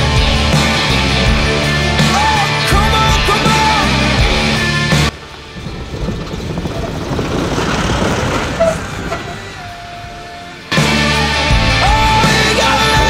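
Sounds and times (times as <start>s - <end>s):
rock music: 0.0s - 7.6s, 9.0s - 13.0s
tyres on gravel: 0.0s - 13.0s
vehicle engine: 0.0s - 13.0s.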